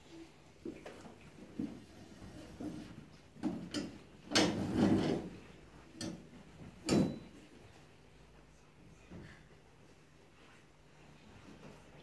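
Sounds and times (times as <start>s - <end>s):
metal chairs clattering: 2.6s - 6.2s, 6.8s - 7.4s.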